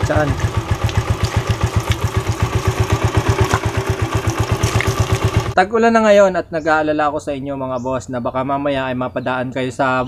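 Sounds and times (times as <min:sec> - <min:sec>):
motorcycle engine idling: 0:00.0 - 0:05.6
water splashing: 0:00.0 - 0:05.6.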